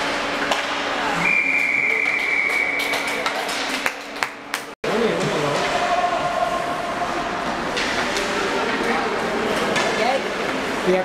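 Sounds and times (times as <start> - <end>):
ice rink hall noise: 0.0 - 11.0.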